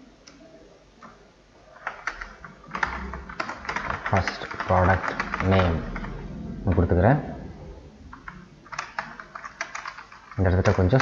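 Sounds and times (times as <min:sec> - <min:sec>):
computer keyboard typing: 0:01.8 - 0:06.8, 0:08.1 - 0:11.0.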